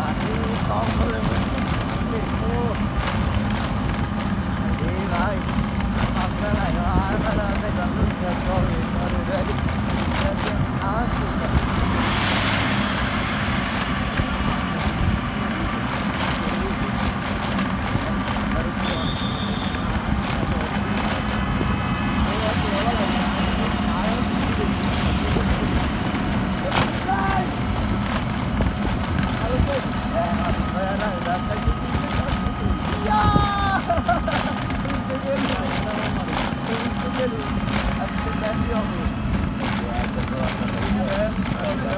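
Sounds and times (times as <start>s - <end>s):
faint voices: 0.0s - 41.9s
low rumble of engines: 0.0s - 41.9s
vehicle passing: 10.1s - 33.7s.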